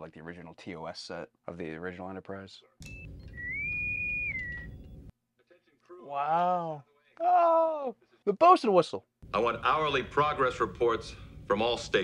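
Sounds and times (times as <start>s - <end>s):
bosun's whistle call: 3.2s - 4.8s.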